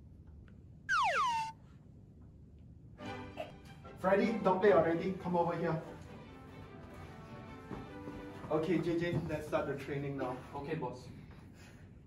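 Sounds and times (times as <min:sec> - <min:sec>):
descending cartoon whistle: 0:00.9 - 0:01.5.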